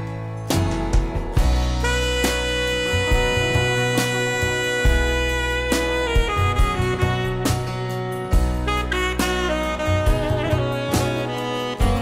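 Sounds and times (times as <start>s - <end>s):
instrumental band music: 0.0s - 12.0s.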